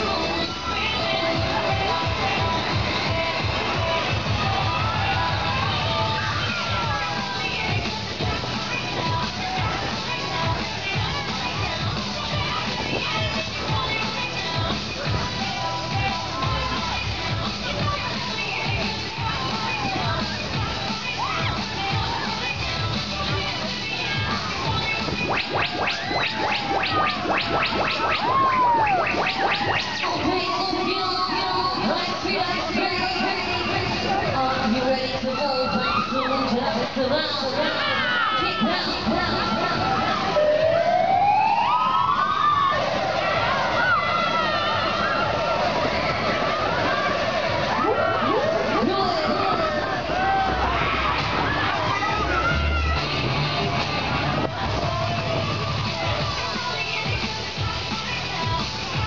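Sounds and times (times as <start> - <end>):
fairground ride music: 0.0 - 59.0
short rising sweep effects: 25.0 - 30.6
tone gliding up and down: 25.0 - 30.6.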